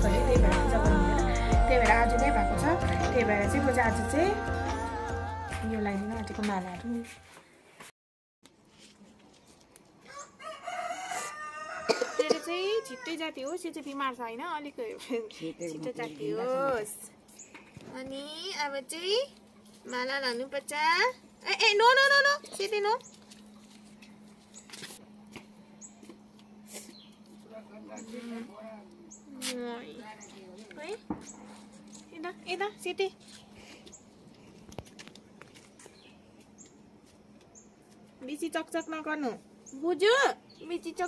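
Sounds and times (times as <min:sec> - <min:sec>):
woman calling: 0:00.0 - 0:07.2
rooster crowing: 0:10.0 - 0:13.4.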